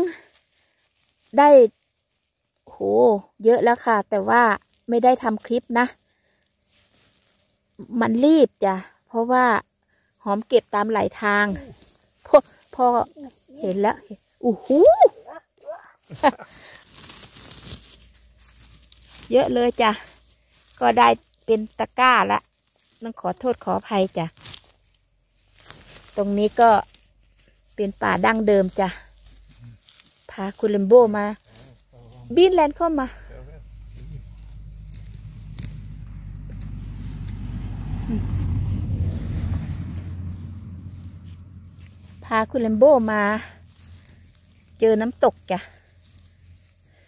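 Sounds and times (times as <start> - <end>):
moss and twigs rustling: 0.0 - 47.0
vehicle engine and tyre rumble: 0.0 - 47.0.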